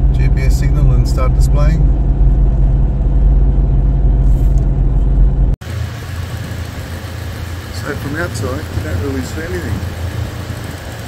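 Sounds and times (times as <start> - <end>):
steady low hum: 0.0 - 8.0
road and engine noise in car: 0.0 - 11.0.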